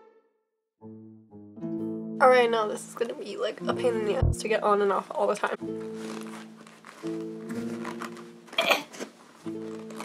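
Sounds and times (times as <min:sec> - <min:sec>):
boot rustle: 0:05.8 - 0:10.0.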